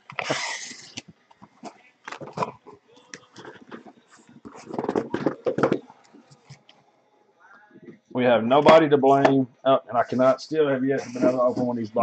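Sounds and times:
cardboard scraping: 0.1 - 2.6, 3.4 - 6.5
cardboard rustling and knocking: 3.4 - 5.9.

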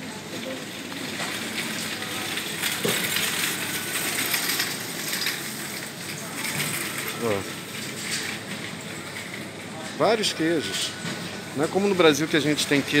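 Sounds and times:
supermarket background hiss: 0.0 - 13.0.

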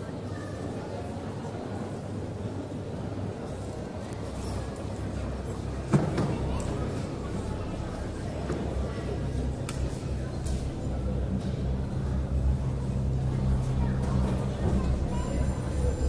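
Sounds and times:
background chatter: 0.0 - 16.0.

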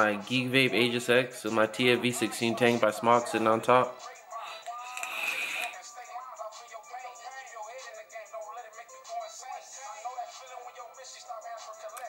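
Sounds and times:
faint music with singing: 0.0 - 12.0.

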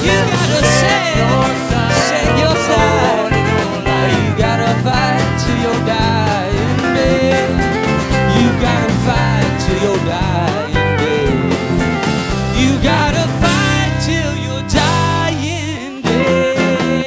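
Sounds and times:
acoustic guitar strummed: 0.0 - 17.0
man singing: 0.0 - 17.0.

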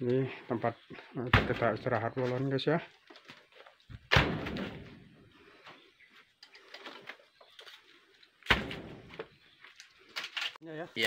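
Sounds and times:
heavy thuds: 3.9 - 5.2.

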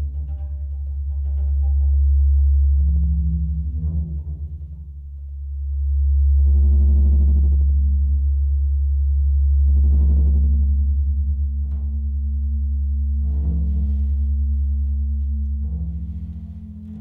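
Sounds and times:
deep low drone: 0.0 - 17.0.

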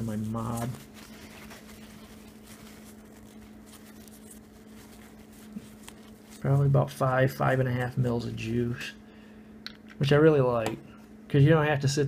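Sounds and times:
paper towel rubbing: 0.0 - 8.5
steady low hum: 0.0 - 12.0.

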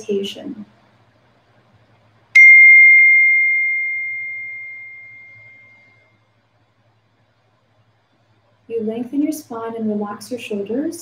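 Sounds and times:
meditation bell ringing: 2.4 - 6.0.

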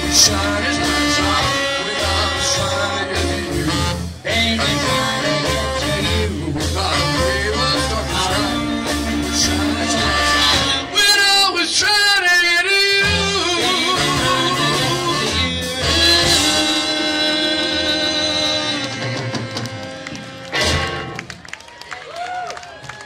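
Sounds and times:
vocal group singing close harmony: 0.0 - 10.9
rock and roll band: 0.0 - 23.0.

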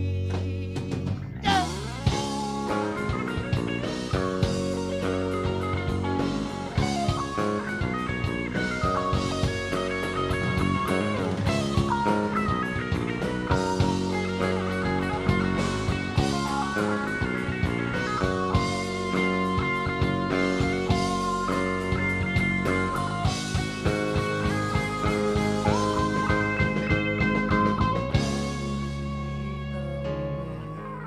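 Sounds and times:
bass guitar: 0.0 - 31.0
drum kit: 0.0 - 31.0
electric guitars: 0.0 - 31.0.

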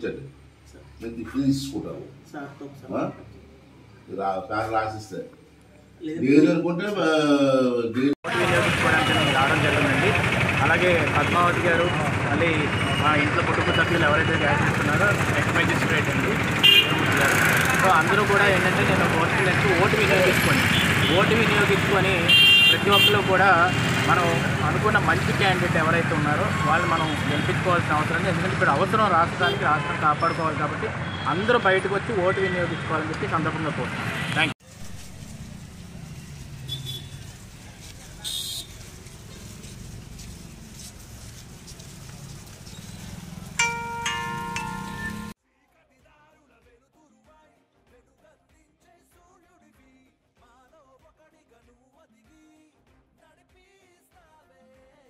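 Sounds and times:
street traffic: 0.0 - 6.4, 8.1 - 45.4
vehicle horn toots: 16.6 - 17.2, 22.2 - 24.4, 29.4 - 30.1, 36.6 - 37.3, 38.2 - 38.7.

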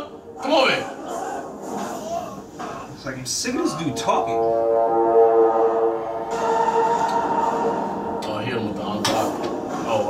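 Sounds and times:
action film soundtrack: 0.0 - 10.0.

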